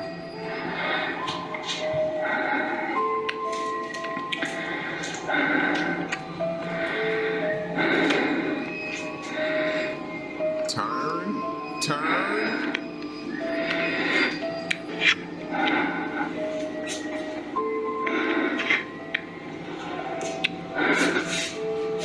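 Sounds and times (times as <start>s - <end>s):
slow sustained background music: 0.0s - 22.0s.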